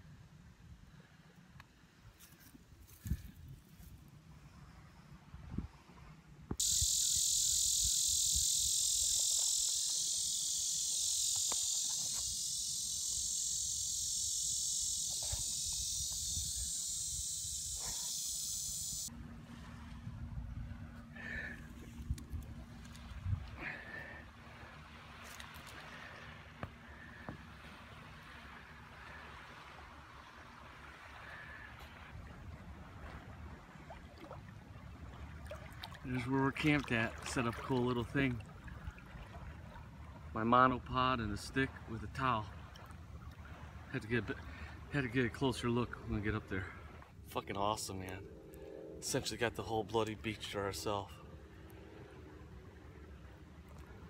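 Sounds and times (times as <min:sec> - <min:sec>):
buzzing insects chorus: 0:06.6 - 0:19.1.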